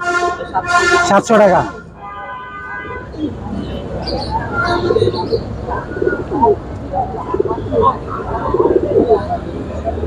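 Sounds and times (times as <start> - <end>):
people talking: 0.0 - 1.8, 3.0 - 10.0
pigeons cooing: 4.0 - 9.4.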